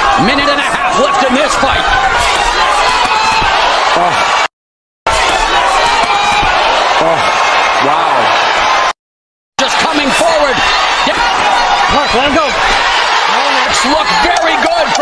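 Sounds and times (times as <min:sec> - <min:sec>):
arena crowd roar: 0:00.0 - 0:04.5, 0:05.1 - 0:09.0, 0:09.6 - 0:15.0.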